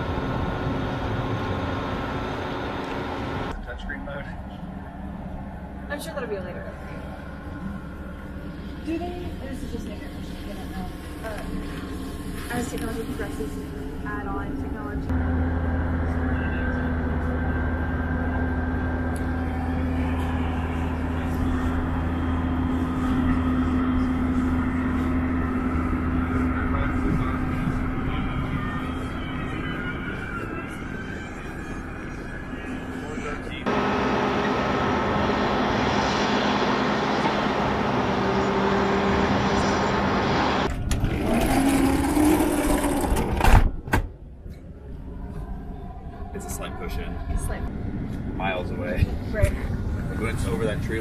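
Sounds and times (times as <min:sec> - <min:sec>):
machinery hum: 0:00.0 - 0:43.6.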